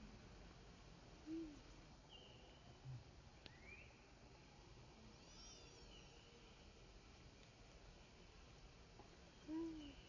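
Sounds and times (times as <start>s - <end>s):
faint high-pitched chirps: 5.0s - 6.8s, 9.3s - 10.0s.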